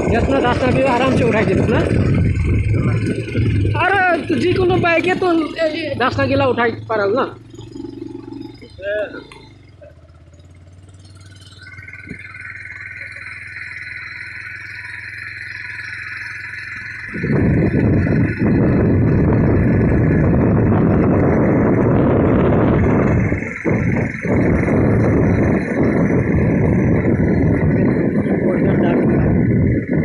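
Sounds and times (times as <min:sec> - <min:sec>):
wind and road rushing noise: 0:00.0 - 0:08.6, 0:16.7 - 0:30.0
high steady whine: 0:00.0 - 0:30.0
low engine hum: 0:00.0 - 0:30.0.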